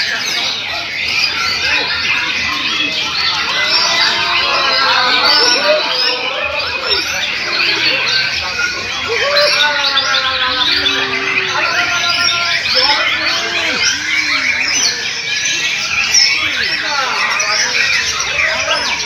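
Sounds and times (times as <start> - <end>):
caged songbirds singing: 0.0 - 19.0
murmur of voices: 0.0 - 19.0.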